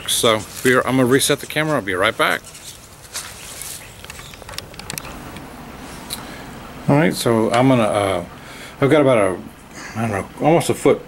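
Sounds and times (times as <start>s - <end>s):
rustling against microphone: 0.0s - 6.5s
sharp clicks: 4.0s - 5.5s.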